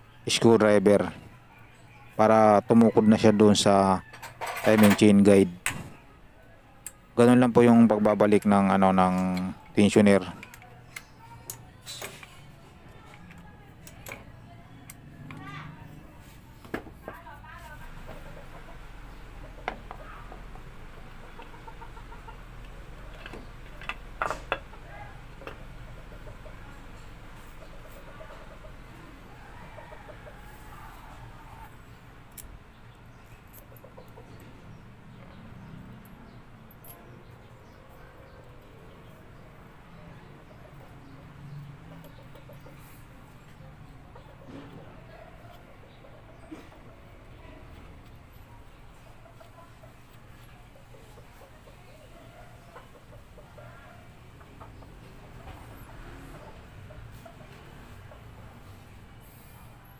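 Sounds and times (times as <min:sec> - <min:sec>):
chickens clucking: 0:17.8 - 0:59.9.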